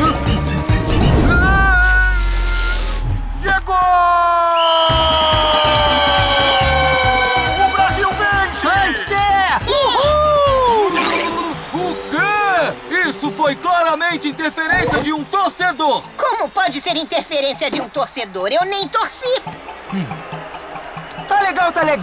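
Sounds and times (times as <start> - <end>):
falling whistle-like glide: 1.0 - 3.2.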